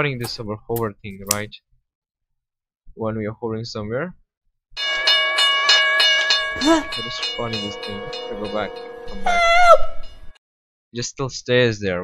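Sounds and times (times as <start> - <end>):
cartoon railroad crossing bell: 4.8 - 10.4.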